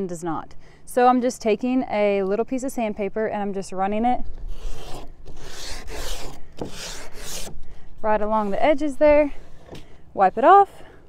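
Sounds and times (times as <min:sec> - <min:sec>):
sandpaper rubbing: 0:04.5 - 0:07.5.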